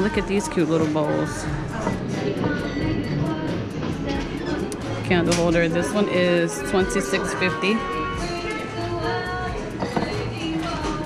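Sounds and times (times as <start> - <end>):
store background music: 0.0 - 11.0.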